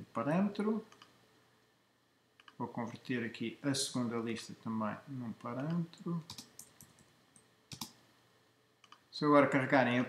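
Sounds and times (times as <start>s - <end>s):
computer mouse clicks: 0.9s - 1.2s, 2.4s - 2.6s, 5.4s - 8.0s, 8.8s - 9.1s.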